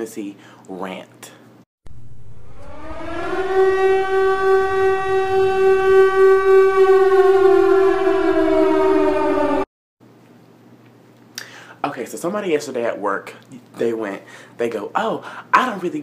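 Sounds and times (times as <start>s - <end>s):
warning siren: 1.9s - 9.7s.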